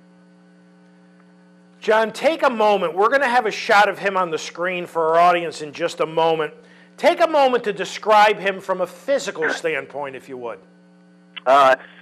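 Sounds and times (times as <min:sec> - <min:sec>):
electrical hum on telephone line: 0:00.0 - 0:12.0
man speaking: 0:01.8 - 0:10.6, 0:11.4 - 0:11.8.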